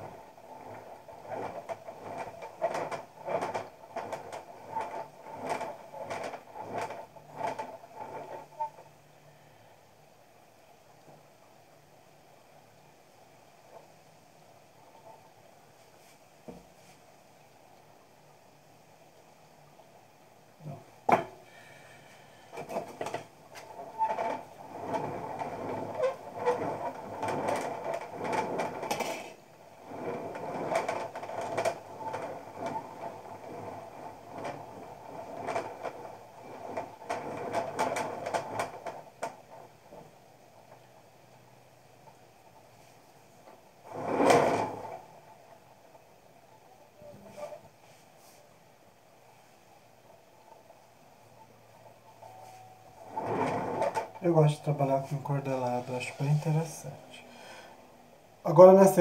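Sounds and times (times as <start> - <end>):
scraping and rubbing clay pot: 0.0 - 9.0, 20.6 - 40.9, 43.8 - 45.3, 46.8 - 48.5, 51.4 - 57.6.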